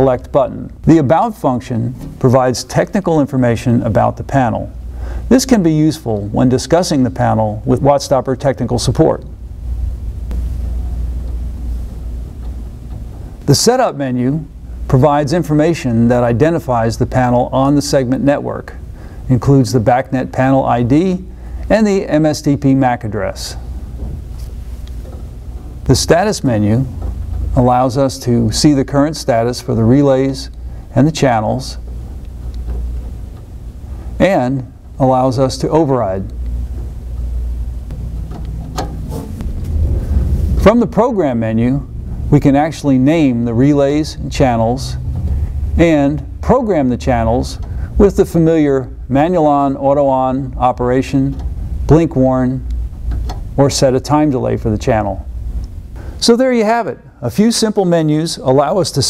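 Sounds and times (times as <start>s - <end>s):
low background rumble: 0.0s - 56.3s
low rumble: 9.3s - 13.4s, 36.2s - 48.0s.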